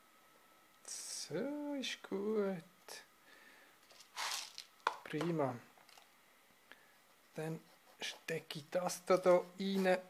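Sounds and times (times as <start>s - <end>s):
clay granules rustling and crunching: 3.9s - 4.8s.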